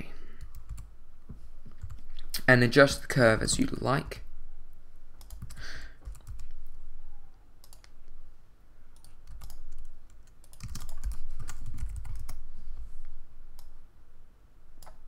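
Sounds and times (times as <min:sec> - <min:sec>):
computer keyboard key clicks: 0:09.0 - 0:12.4.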